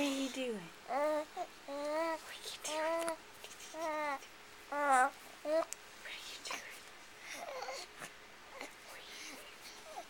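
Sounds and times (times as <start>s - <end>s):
baby cooing: 0.9s - 5.7s, 7.3s - 7.9s
baby breathy sounds: 7.2s - 10.0s.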